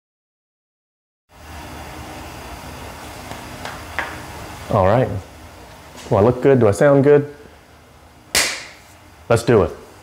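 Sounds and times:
low hum and hiss: 1.3s - 10.0s.

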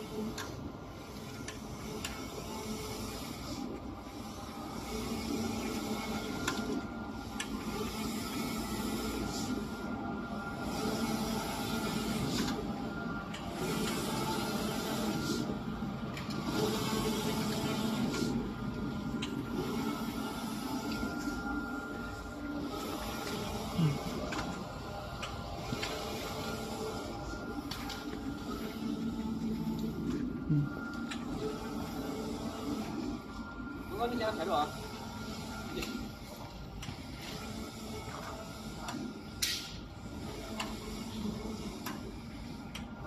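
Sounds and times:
printer mechanical hum: 0.0s - 43.0s
printer whirring pass: 0.0s - 43.0s.

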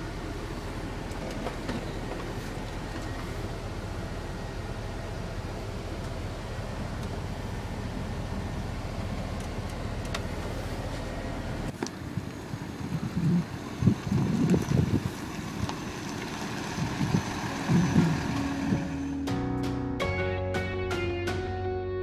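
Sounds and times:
diesel engine humming: 0.0s - 22.0s
wind buffeting microphone: 12.1s - 19.0s.

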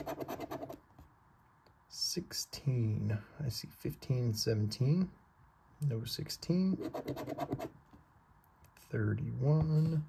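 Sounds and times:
lottery ticket scratching: 0.0s - 0.8s, 6.7s - 7.7s.

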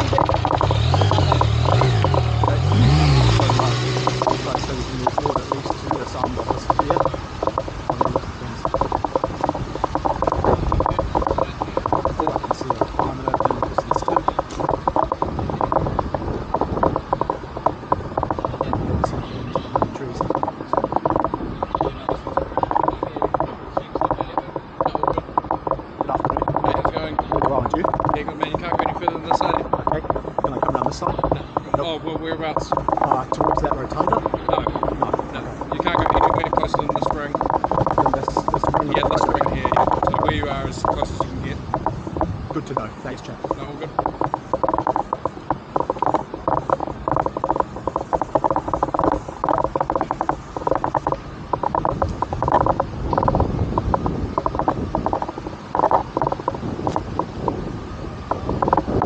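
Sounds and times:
motorcycle engine: 0.0s - 57.6s
freewheel ratchet ticking: 0.0s - 57.7s, 58.3s - 59.0s
bicycle rolling on paved path: 0.0s - 59.0s.

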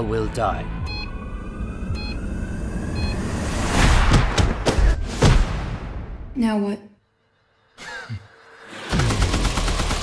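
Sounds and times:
rising noise swell: 0.7s - 4.6s.

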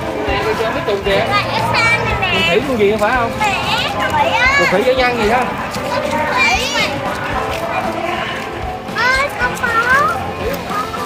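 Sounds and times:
children chattering: 0.0s - 11.0s
children shouting: 0.0s - 11.0s.

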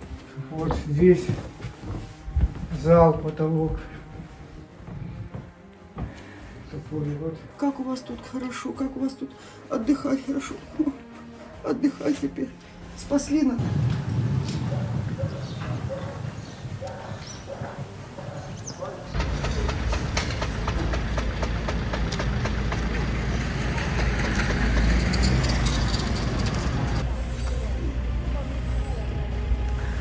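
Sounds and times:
wind rumble on microphone: 13.6s - 18.0s.

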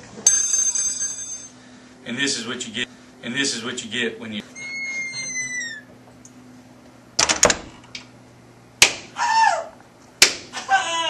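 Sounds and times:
high squeak: 4.5s - 5.9s
wooden paddle smacks: 8.8s - 9.1s, 10.2s - 10.5s.

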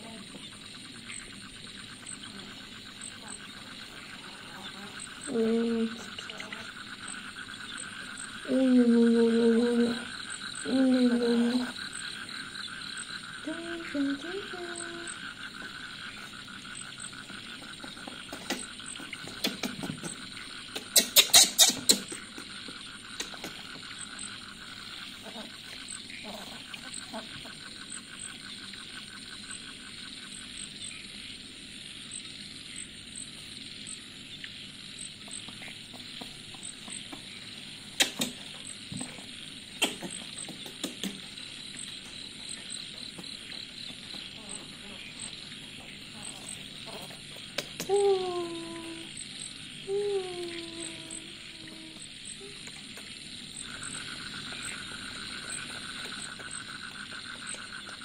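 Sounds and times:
high pulsing chirp: 0.0s - 58.0s.

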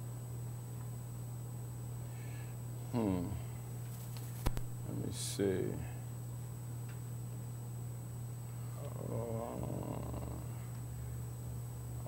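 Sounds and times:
faint high whine: 0.0s - 12.0s
steady low hum: 0.0s - 12.0s
man saying uhh: 2.9s - 3.5s, 8.8s - 10.6s.

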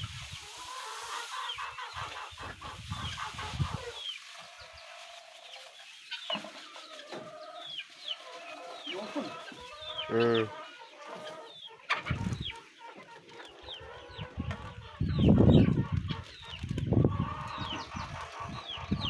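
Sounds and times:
rice bran pouring from sack: 0.0s - 1.7s
chickens clucking: 0.0s - 19.0s.

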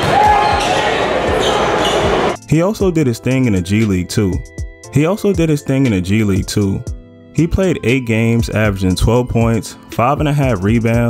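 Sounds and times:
shoe squeak: 0.4s - 2.4s.

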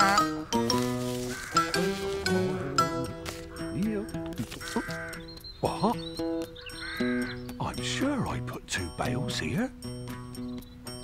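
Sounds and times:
light cartoon background music: 0.0s - 11.0s.

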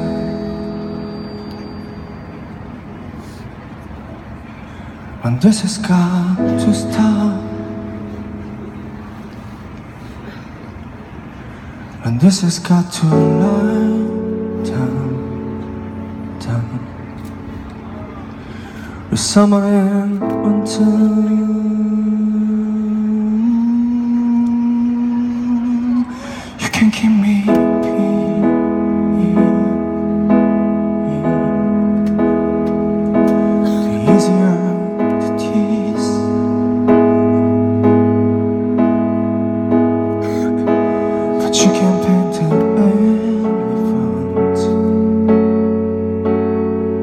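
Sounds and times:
electric keyboard chord: 0.0s - 3.8s, 5.8s - 11.8s, 12.9s - 47.0s
city street noise hum: 0.0s - 47.0s.

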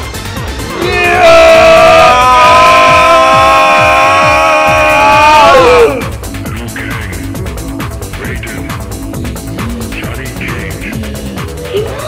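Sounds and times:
electronic dance music: 0.0s - 12.0s
long loud yell: 0.6s - 6.1s.

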